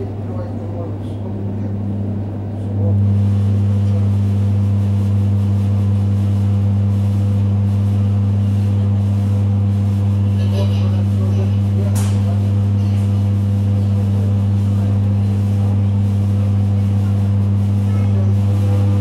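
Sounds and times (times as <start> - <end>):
deep electric train hum: 0.0 - 19.0.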